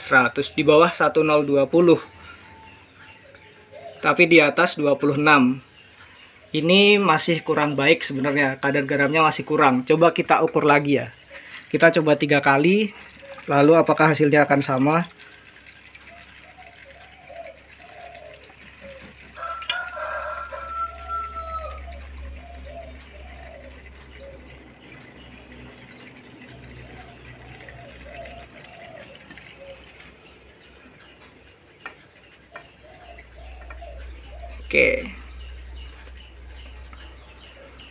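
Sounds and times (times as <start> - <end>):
water trickling and splashing: 9.3 - 31.3.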